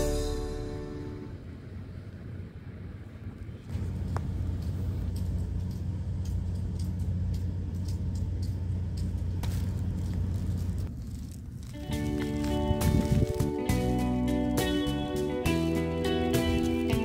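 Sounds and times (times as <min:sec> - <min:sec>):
low mechanical rumble: 0:00.0 - 0:17.0
faint scattered clicks: 0:03.7 - 0:10.3.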